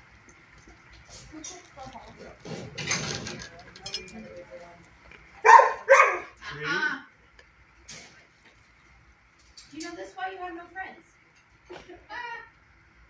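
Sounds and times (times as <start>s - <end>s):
dog barking and yowling: 5.4s - 6.4s.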